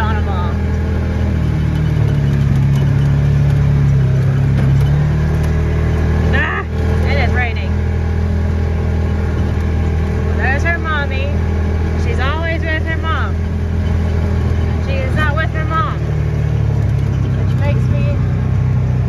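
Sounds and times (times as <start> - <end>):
vehicle engine low drone: 0.0 - 19.0.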